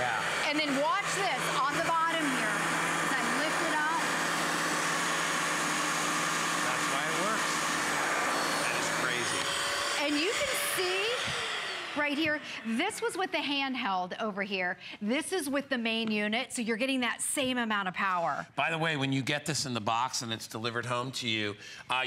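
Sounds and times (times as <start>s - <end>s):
carpet cleaner motor whirring: 0.0s - 13.1s.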